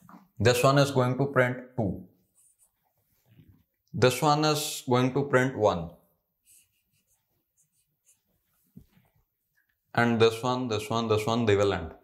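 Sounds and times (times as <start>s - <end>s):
marker on whiteboard: 2.2s - 2.8s, 6.4s - 8.9s.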